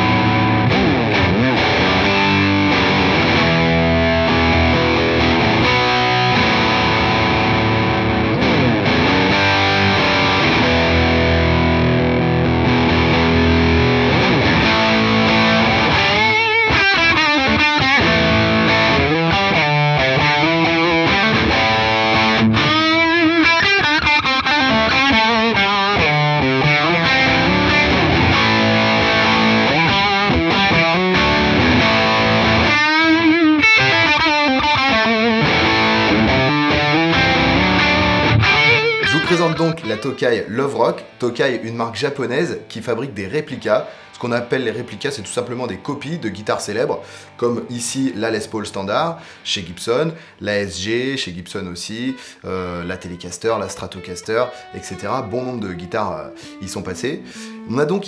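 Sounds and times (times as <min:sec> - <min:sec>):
distorted electric guitar: 0:00.0 - 0:50.3, 0:51.8 - 0:58.0.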